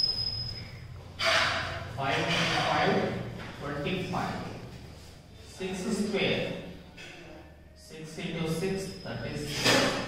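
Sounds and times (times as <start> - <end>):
person speaking: 2.0 - 9.8.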